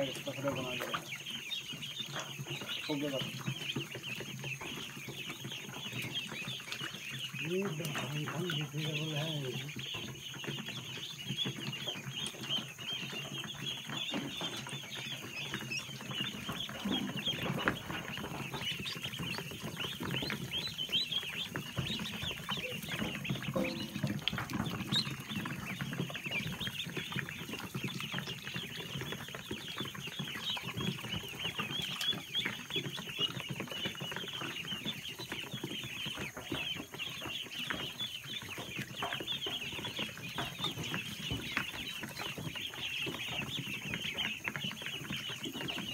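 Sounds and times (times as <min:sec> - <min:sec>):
ducklings peeping: 0:00.0 - 0:45.9.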